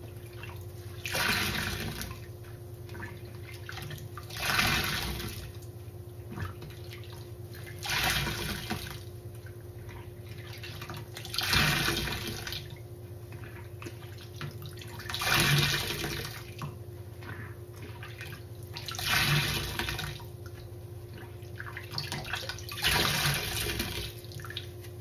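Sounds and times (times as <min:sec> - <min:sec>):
steady low hum: 0:00.0 - 0:25.0
sponge squeezed in water: 0:04.2 - 0:05.5.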